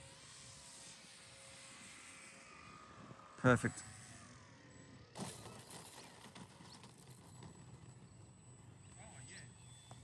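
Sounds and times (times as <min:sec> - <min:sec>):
faint outdoor air: 0:00.0 - 0:10.0.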